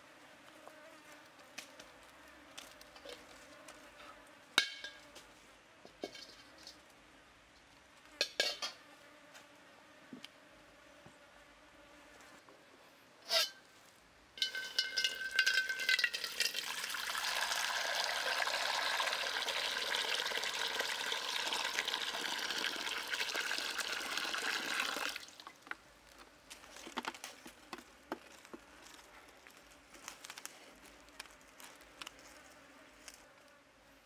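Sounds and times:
water pouring into metal wok: 0:14.4 - 0:25.5.

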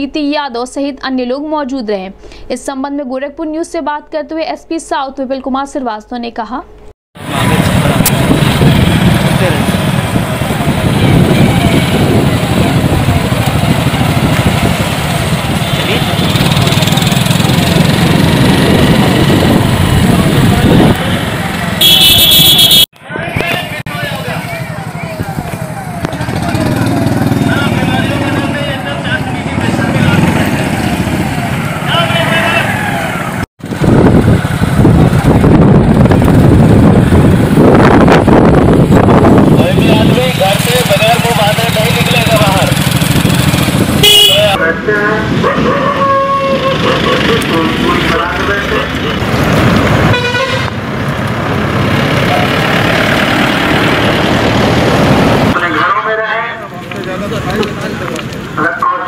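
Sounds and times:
voices: 0:07.2 - 0:17.9, 0:23.0 - 0:33.4, 0:39.5 - 0:42.8, 0:44.0 - 0:49.3, 0:55.5 - 0:59.0
motorcycle engines passing: 0:07.2 - 0:59.0
horn toots: 0:21.8 - 0:22.9, 0:39.4 - 0:40.8, 0:43.8 - 0:44.6, 0:45.7 - 0:47.2, 0:50.0 - 0:50.8.

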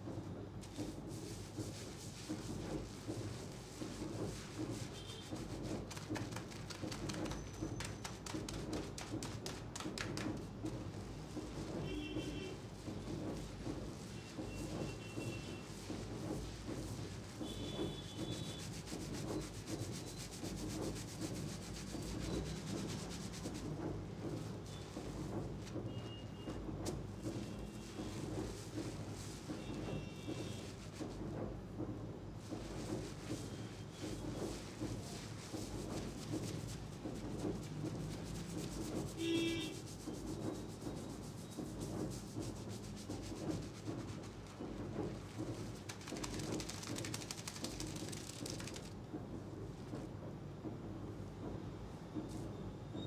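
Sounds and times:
fingers rubbing lathered scalp: 0:00.0 - 0:31.7, 0:32.3 - 0:49.0.

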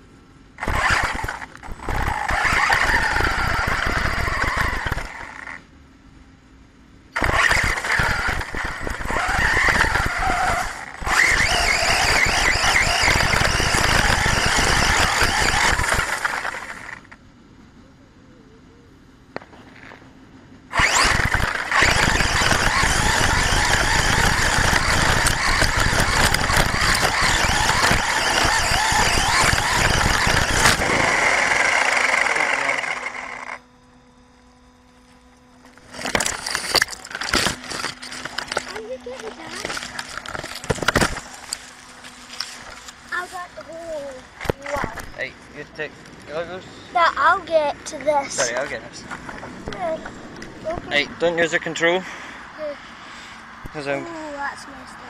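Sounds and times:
rc truck motor rushing through grass: 0:00.6 - 0:05.7, 0:07.1 - 0:17.2, 0:20.7 - 0:45.3.

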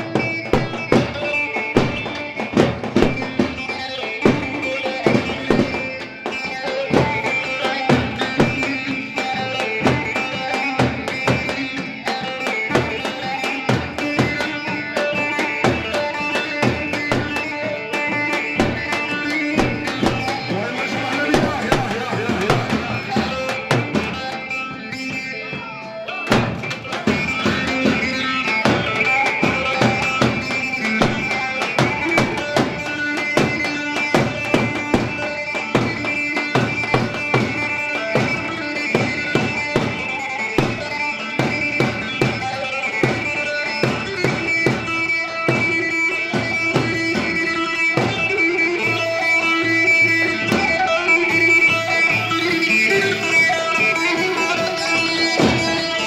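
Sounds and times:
amplified plucked saz melody: 0:00.0 - 0:56.0
drum kit fast beat: 0:18.6 - 0:24.4.

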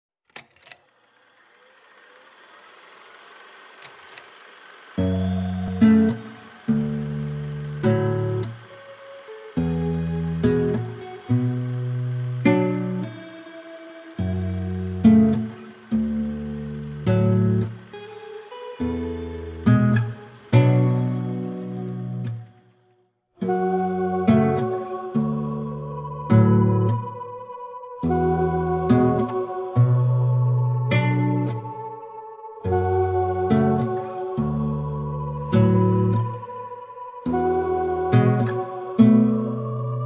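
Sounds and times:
soft swell: 0:04.3 - 0:20.5, 0:23.4 - 0:40.0
electric guitar chords: 0:05.0 - 0:22.6, 0:23.4 - 0:40.0.

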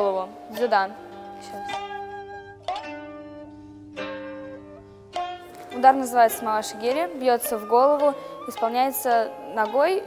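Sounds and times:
plucked string instrument: 0:00.0 - 0:10.0.

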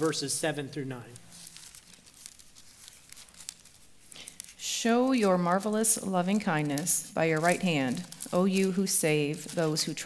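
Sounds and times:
pages being turned: 0:00.0 - 0:10.0.

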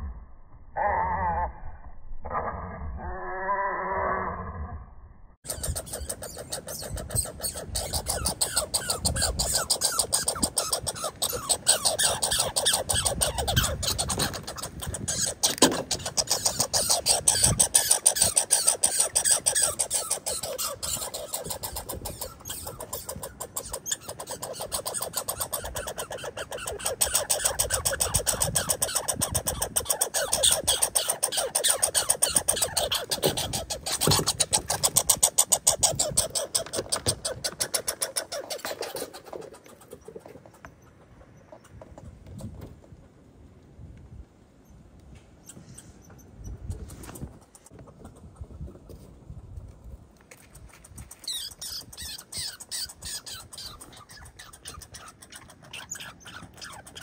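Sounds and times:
squirrel chattering: 0:05.4 - 0:42.7, 0:45.4 - 0:49.1, 0:50.4 - 0:57.0.

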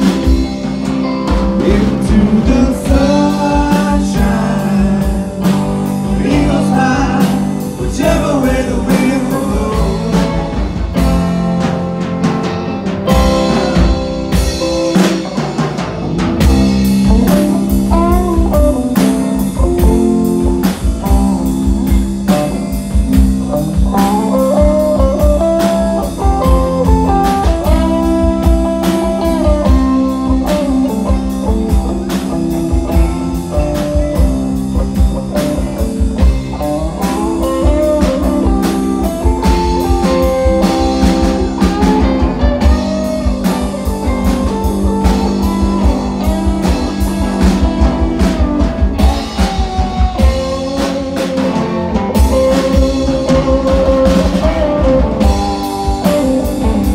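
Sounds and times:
bass guitar: 0:00.0 - 0:56.9
drum kit: 0:00.0 - 0:56.9
lead electric guitar bending: 0:00.0 - 0:56.9
strummed guitar: 0:00.0 - 0:56.9.

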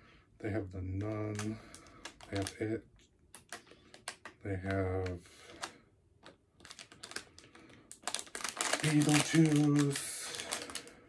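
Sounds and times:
plastic package crinkling: 0:00.9 - 0:11.0.

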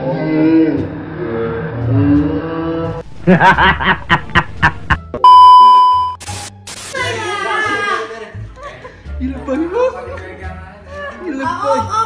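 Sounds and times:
man laughing: 0:03.2 - 0:05.1
high test-tone beep: 0:05.2 - 0:06.2.

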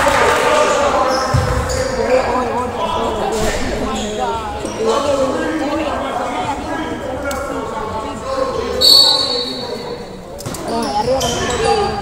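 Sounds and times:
chatter of people: 0:00.0 - 0:12.0
referee's whistle blast: 0:08.8 - 0:09.8.

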